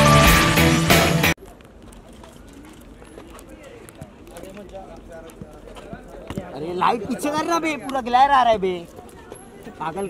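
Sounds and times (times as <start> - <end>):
background chatter of voices: 1.4 - 10.0.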